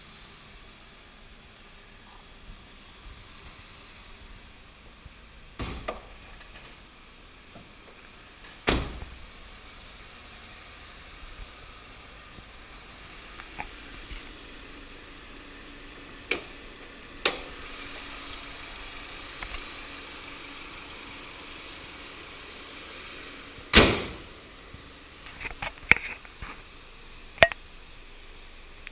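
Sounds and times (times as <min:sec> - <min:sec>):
car hood slamming shut: 0:08.6 - 0:09.1, 0:23.7 - 0:24.3.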